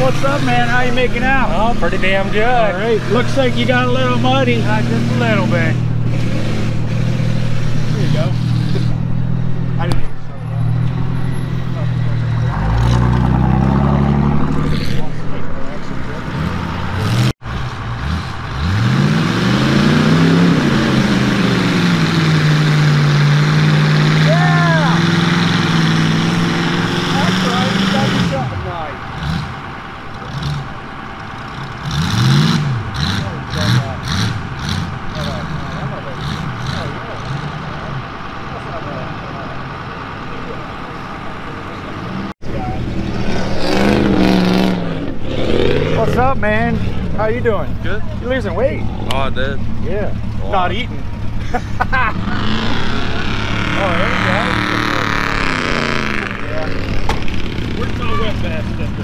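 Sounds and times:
tractor engine revving: 0.0s - 59.0s
vehicle engine idling and revving: 0.0s - 59.0s.

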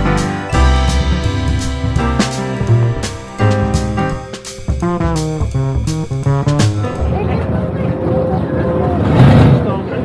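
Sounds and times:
crowd chatter: 6.8s - 10.0s.

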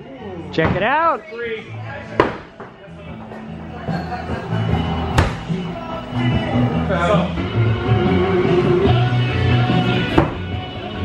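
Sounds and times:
hatchet striking wooden plank: 2.2s - 2.6s
rock music: 3.5s - 11.0s.

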